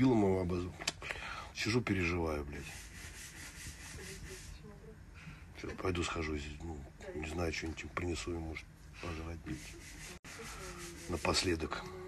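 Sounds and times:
faint rapid rubbing: 2.4 - 4.6, 9.1 - 11.8.

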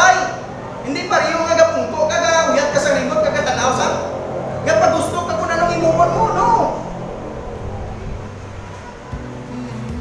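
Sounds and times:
low background rumble: 1.4 - 9.7.

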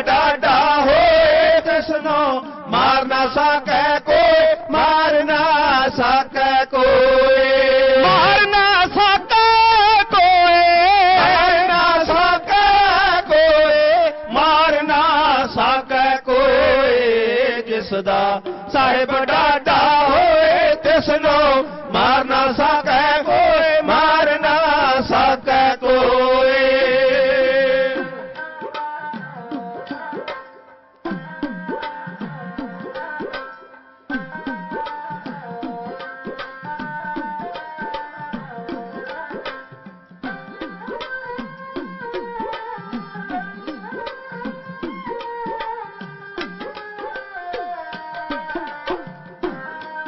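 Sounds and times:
man chanting a ballad: 0.0 - 28.6
men singing: 0.0 - 30.5
sarangi accompaniment: 0.0 - 50.0.

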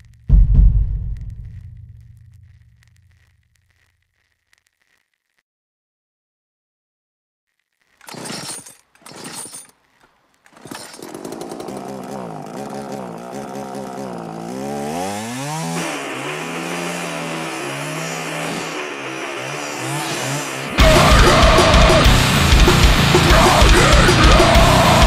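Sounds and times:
chainsaw revving: 10.5 - 25.0.

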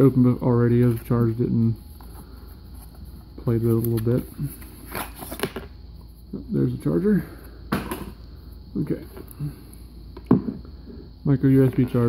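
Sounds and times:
objects handling noise: 1.8 - 5.7.

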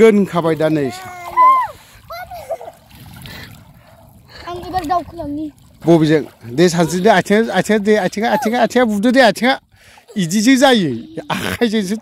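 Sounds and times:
splashing in shallow water: 0.0 - 12.0
child calling out: 1.0 - 2.4.

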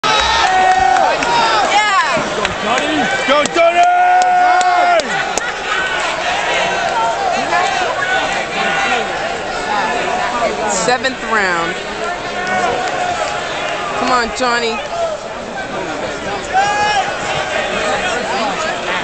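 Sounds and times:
crowd cheering and shouting: 0.0 - 19.0
fans yelling close by: 0.0 - 19.0.

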